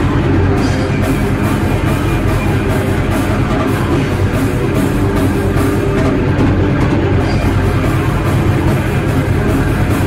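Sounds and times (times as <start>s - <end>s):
distorted guitar: 0.0s - 10.0s
drums: 0.0s - 10.0s.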